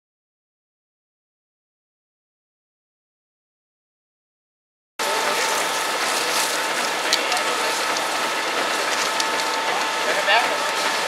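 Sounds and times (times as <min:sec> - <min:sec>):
fire crackling and popping: 0:05.0 - 0:11.0
fire hissing: 0:05.0 - 0:11.0.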